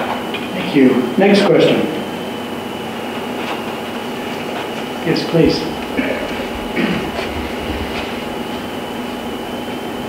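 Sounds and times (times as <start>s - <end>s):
faint murmur: 0.4s - 10.0s
microphone hiss and hum: 0.5s - 10.0s
low bumps: 4.3s - 10.0s.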